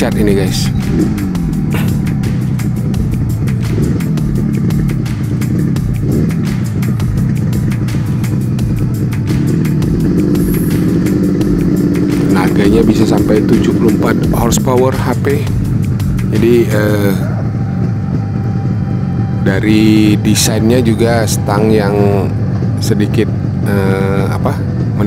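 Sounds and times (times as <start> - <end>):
background music with steady beat: 0.0 - 25.0
motorcycle engine running: 0.0 - 25.0.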